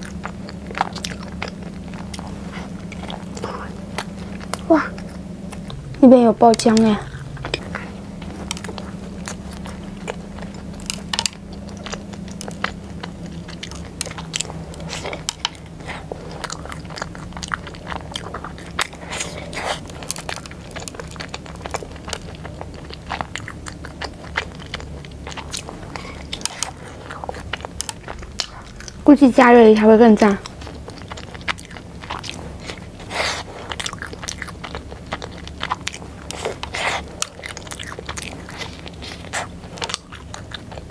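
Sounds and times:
crunchy chewing and mouth clicks: 0:00.0 - 0:40.9
steady low hum: 0:00.0 - 0:40.9.

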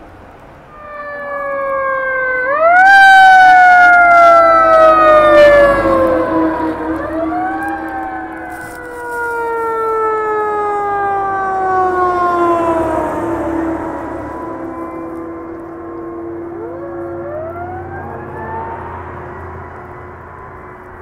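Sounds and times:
fire engine siren wailing: 0:00.6 - 0:21.0
steady low tone: 0:04.4 - 0:09.0.

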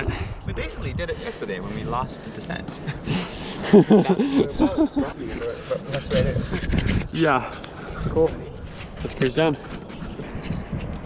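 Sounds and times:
man talking: 0:00.0 - 0:02.9, 0:03.8 - 0:09.6
man laughing: 0:02.8 - 0:06.6.

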